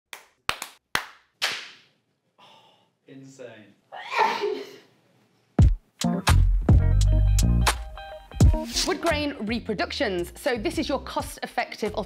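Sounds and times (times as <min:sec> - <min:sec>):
hands clapping: 0:00.1 - 0:01.9, 0:07.6 - 0:07.9.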